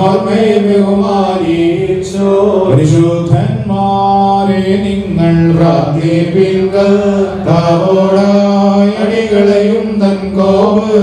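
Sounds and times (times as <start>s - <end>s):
liturgical chant over loudspeakers: 0.0s - 11.0s.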